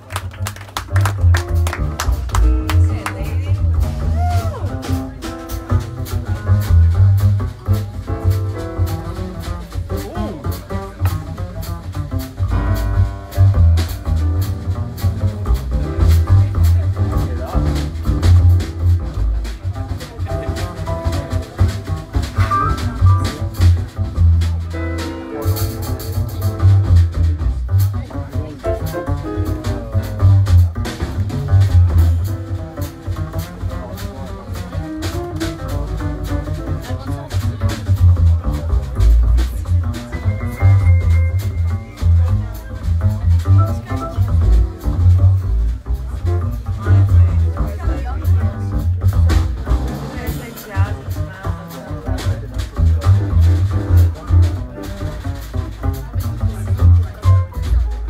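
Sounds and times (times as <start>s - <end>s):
upright bass plucking: 0.0s - 58.0s
drum kit with cymbals: 0.8s - 58.0s
mid range pitched instruments: 38.9s - 45.7s.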